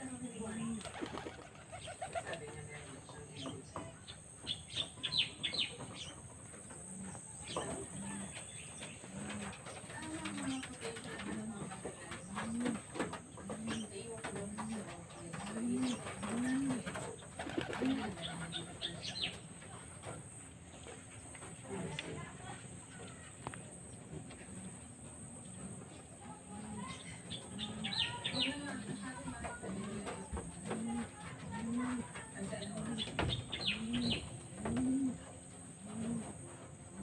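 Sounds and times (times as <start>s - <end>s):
dove cooing: 0.0s - 2.9s, 6.8s - 20.1s, 25.2s - 37.0s
small birds chirping: 0.0s - 37.0s.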